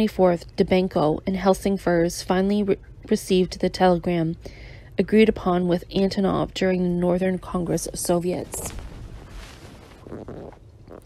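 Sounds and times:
low rumble: 7.8s - 11.0s.

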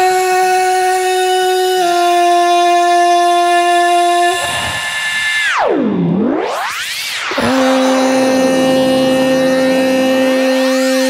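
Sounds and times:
reedy horn-like tone: 7.4s - 11.0s.

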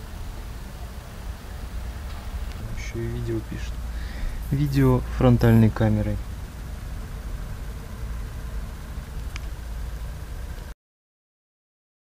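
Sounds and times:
even hiss: 0.0s - 10.7s
low rumble: 0.0s - 10.7s.

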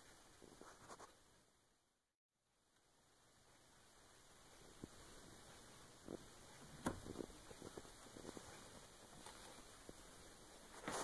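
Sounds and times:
faint short scratching: 0.5s - 1.2s.

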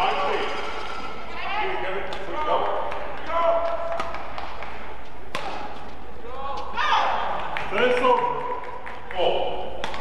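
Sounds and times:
arena background noise: 0.0s - 10.0s
racket hitting shuttlecock: 5.2s - 5.8s.

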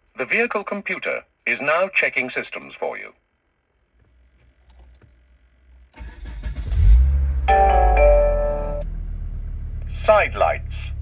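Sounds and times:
car engine cranking and starting: 5.9s - 9.9s.

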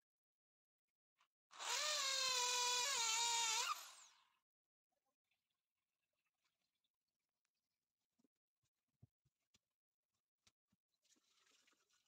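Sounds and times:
electric drill whining in wood: 1.5s - 4.3s.

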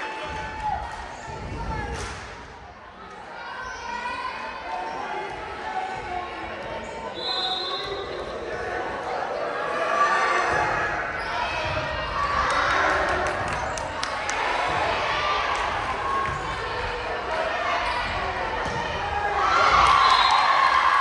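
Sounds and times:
crowd voices in gymnasium: 0.0s - 21.0s.

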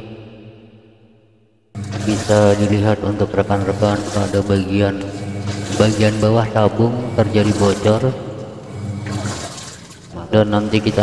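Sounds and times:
water trickling in washing machine: 1.8s - 11.0s.

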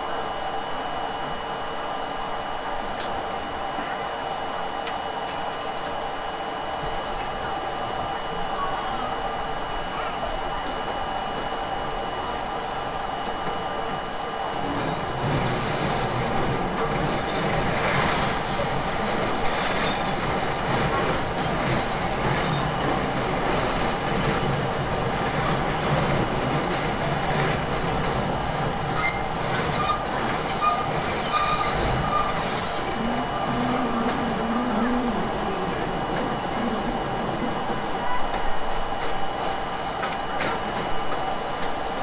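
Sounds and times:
train wheels rolling on rails: 13.2s - 42.0s
high wheel squeals: 29.0s - 35.8s.

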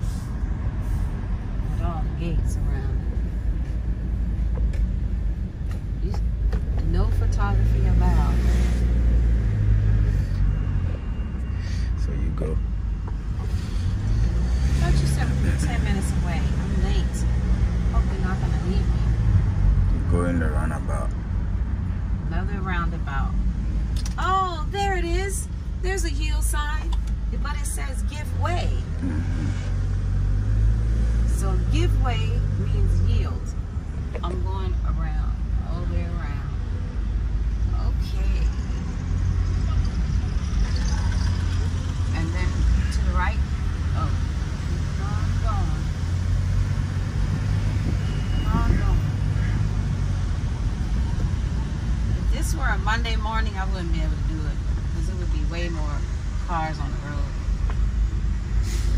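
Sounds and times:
vehicle road and engine rumble: 0.0s - 58.9s
people talking: 1.8s - 3.0s, 6.0s - 6.2s, 6.8s - 8.4s, 14.8s - 17.2s, 18.0s - 19.0s, 20.0s - 21.1s, 22.3s - 23.4s, 24.0s - 29.6s, 31.3s - 33.5s, 34.2s - 36.6s, 37.7s - 38.6s, 42.1s - 44.3s, 44.9s - 46.0s, 48.4s - 49.1s, 52.2s - 57.4s.

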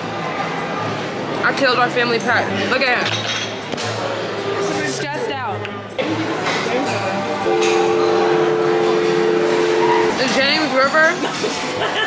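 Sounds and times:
steady two-note tone: 7.4s - 10.5s.

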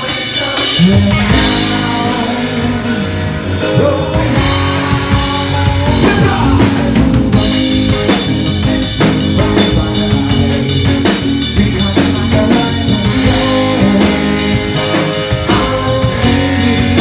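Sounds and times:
drum kit beat: 0.0s - 17.0s
live rock band playing: 0.0s - 17.0s.

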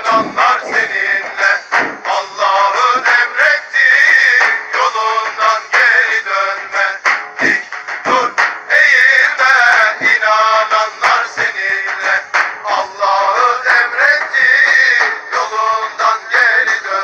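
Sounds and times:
man singing in strained high voice: 0.0s - 17.0s.

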